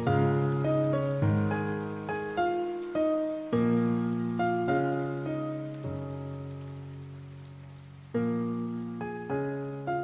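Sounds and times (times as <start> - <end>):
rain: 0.0 - 10.0
soft piano chords: 0.0 - 10.0.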